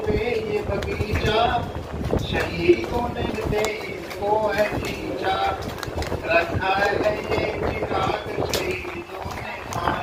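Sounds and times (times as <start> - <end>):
man speaking over loudspeaker: 6.4 - 10.0.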